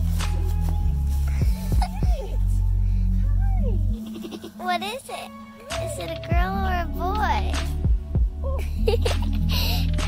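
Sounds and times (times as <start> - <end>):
background music with low bass: 0.0 - 10.0.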